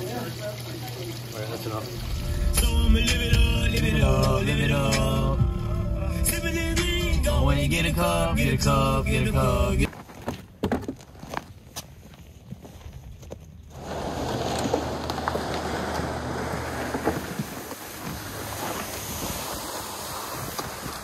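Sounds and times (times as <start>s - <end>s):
low hum: 2.0s - 9.9s
sled dragged over snow: 12.6s - 21.0s.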